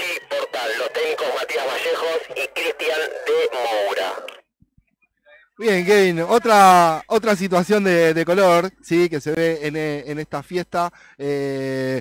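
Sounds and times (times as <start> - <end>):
commentator speaking: 0.0 - 4.4, 5.3 - 12.0.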